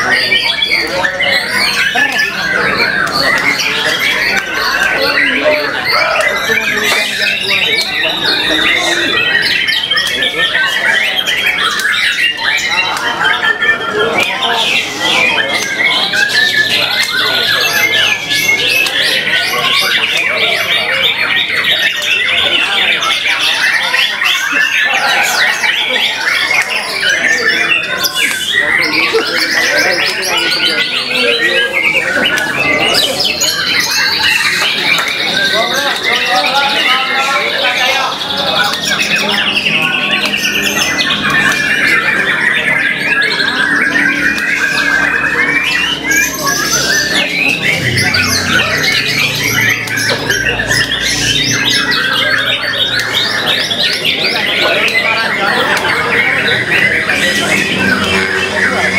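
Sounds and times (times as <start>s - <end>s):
caged songbirds trilling and whistling: 0.0s - 58.9s
songbird singing: 0.0s - 58.9s.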